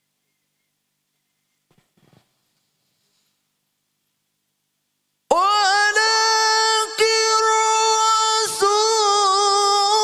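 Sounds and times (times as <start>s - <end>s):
man reciting through microphone: 5.3s - 10.0s.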